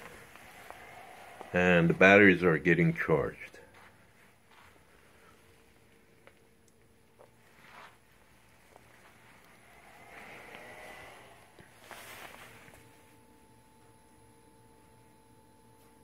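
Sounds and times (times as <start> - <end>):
low steady hum: 0.0 - 16.0
faint rustling handling noise: 2.9 - 13.2.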